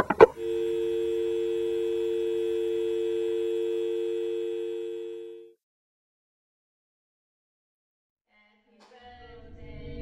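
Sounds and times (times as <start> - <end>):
telephone dial tone: 0.0 - 5.6.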